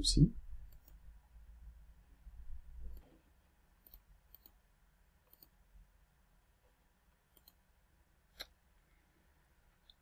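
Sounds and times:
computer mouse clicks: 0.6 - 1.0, 2.8 - 3.2, 3.8 - 4.6, 5.2 - 5.6, 7.3 - 7.7.

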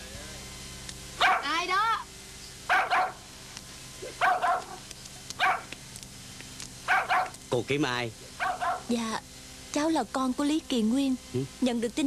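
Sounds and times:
dog barking: 1.2 - 1.6, 2.7 - 3.2, 4.1 - 4.8, 5.4 - 5.7, 6.8 - 7.4, 8.4 - 8.9.

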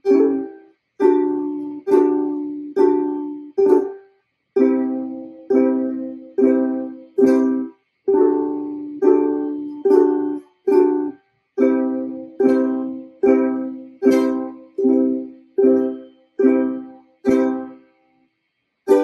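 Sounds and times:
ukulele chords strummed: 0.0 - 17.9.

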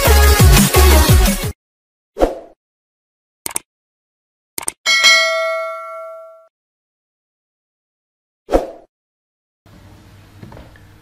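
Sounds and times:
bell ding: 4.9 - 6.5.

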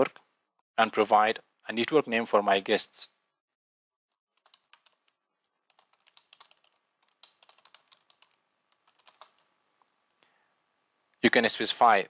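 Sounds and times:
computer keyboard typing: 4.4 - 9.4.

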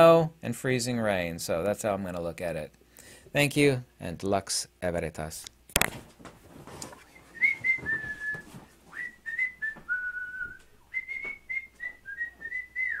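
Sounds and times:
person whistling a tune: 7.2 - 13.0.

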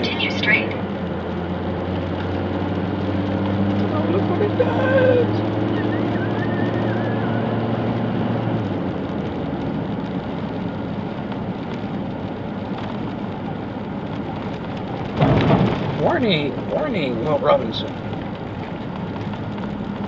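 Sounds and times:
engine hum: 0.0 - 20.0
tyres rumbling on dirt road: 0.0 - 20.0.

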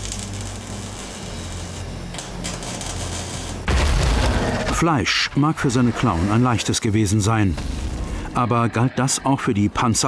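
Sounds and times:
arc welding hiss: 0.0 - 3.7.

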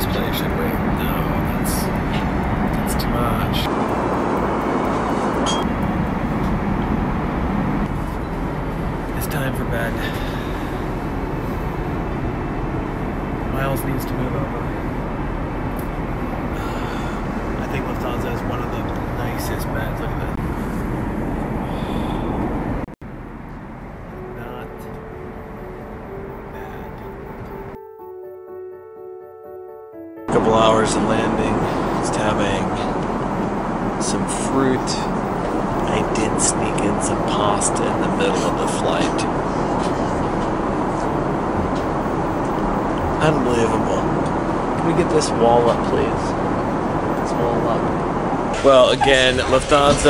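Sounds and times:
airliner cabin roar: 0.0 - 28.2, 30.3 - 50.0
soft music with held tones: 23.6 - 32.2.

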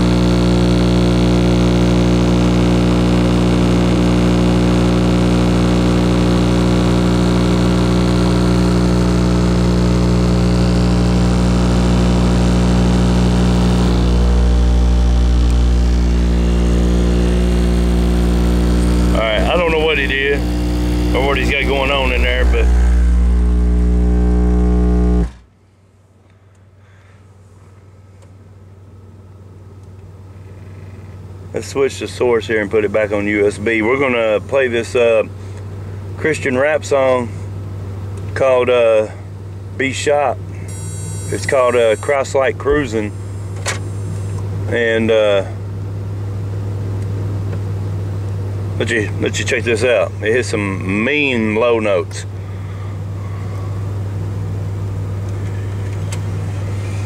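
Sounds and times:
bass-heavy music from car speakers: 0.0 - 25.4
rapped or sung vocal: 10.5 - 25.3.

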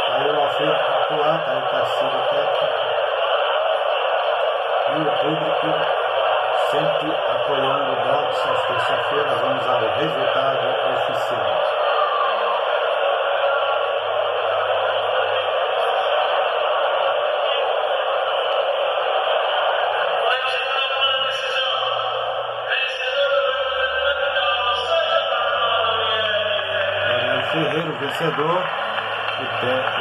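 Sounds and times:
crowd noise in sports hall: 0.0 - 30.0.

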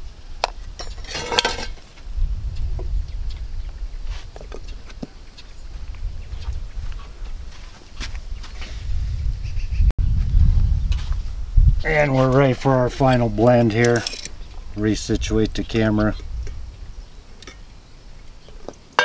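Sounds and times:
low steady rumble: 0.0 - 18.5.

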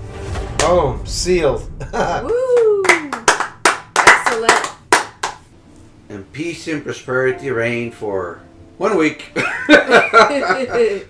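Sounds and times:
people clapping: 2.2 - 5.5.

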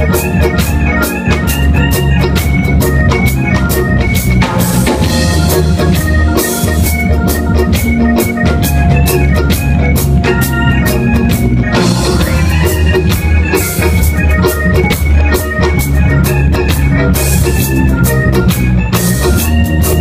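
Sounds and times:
bass guitar line: 0.0 - 20.0
drum kit beat: 0.0 - 20.0
electric guitar: 0.0 - 20.0
organ-like keyboard chords: 0.0 - 20.0.

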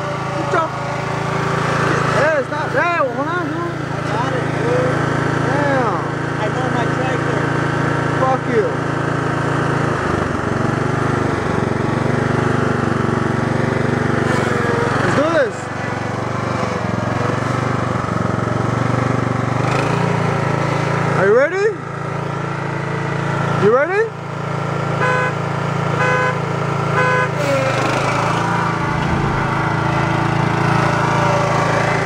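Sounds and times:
lawn mower engine running: 0.0 - 32.0.

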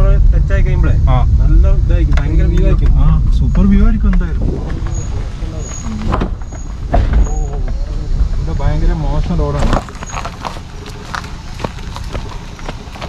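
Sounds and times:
man talking: 0.0 - 4.6
car engine and tyres rumbling: 0.0 - 13.0.

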